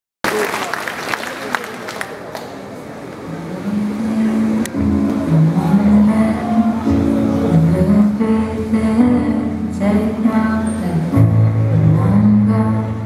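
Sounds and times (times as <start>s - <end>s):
scattered claps: 0.2s - 2.6s
audience chatter: 0.2s - 13.0s.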